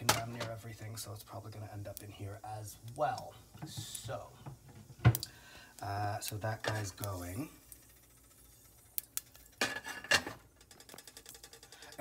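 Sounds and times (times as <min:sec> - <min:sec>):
mustard seeds popping in oil: 0:00.0 - 0:12.0.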